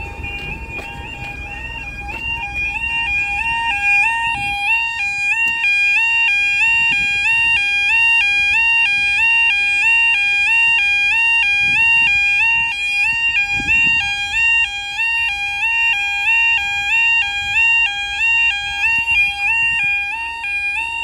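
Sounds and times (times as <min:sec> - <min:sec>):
level crossing alarm warbling: 0:00.0 - 0:21.0.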